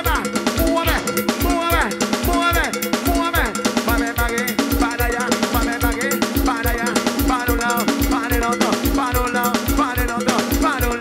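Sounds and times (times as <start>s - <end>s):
cowbell strokes: 0.0s - 11.0s
kick drum beat: 0.0s - 11.0s
live cumbia band: 0.0s - 11.0s.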